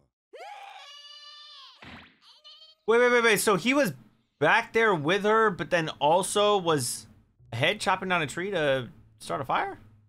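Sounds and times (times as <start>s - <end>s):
cartoon female voice shrieking: 0.4s - 2.9s.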